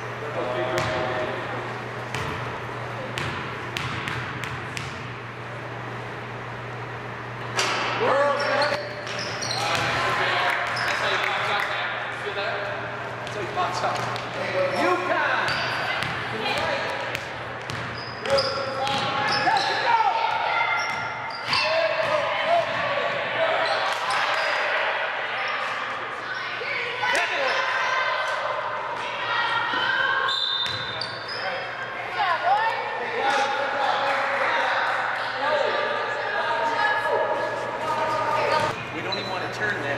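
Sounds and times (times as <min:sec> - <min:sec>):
sneakers squeaking: 0:00.0 - 0:11.5, 0:12.6 - 0:24.8, 0:25.4 - 0:28.5, 0:29.6 - 0:33.5, 0:37.3 - 0:39.9.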